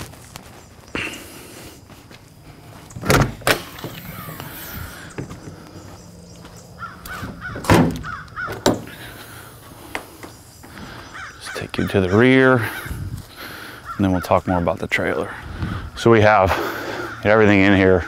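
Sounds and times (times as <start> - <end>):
loud thunks: 3.0 - 4.1, 7.1 - 9.0
trailer doors opening: 3.0 - 5.5, 7.1 - 9.0
crows cawing: 3.9 - 15.8, 16.5 - 18.0.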